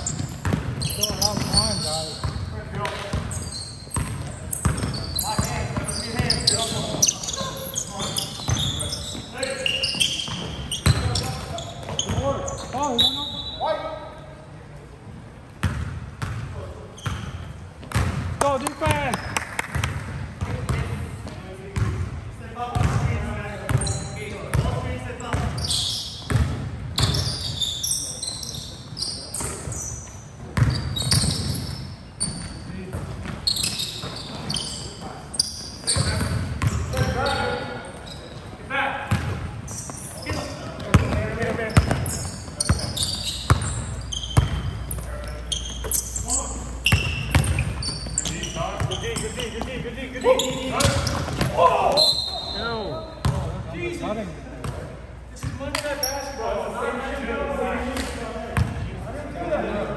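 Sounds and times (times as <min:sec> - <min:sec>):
sneaker squeaks: 0:00.0 - 0:14.4, 0:15.6 - 0:22.0, 0:22.6 - 0:54.0, 0:54.6 - 0:56.5
players' indistinct calls: 0:00.0 - 0:14.6, 0:22.9 - 0:54.4
basketball bouncing on hardwood: 0:00.4 - 0:00.8.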